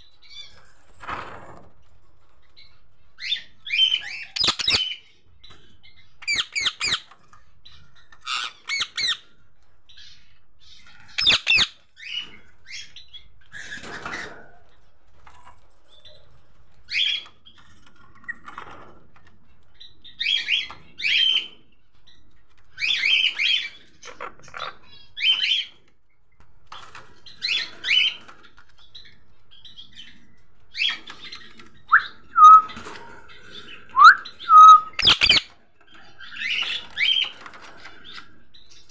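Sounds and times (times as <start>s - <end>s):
parakeets calling shrilly: 6.2s - 7.2s, 10.7s - 14.0s, 33.8s - 35.5s.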